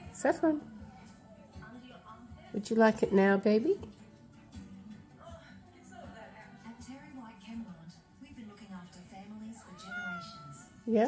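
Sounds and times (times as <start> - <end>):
cat meowing: 9.6 - 10.8.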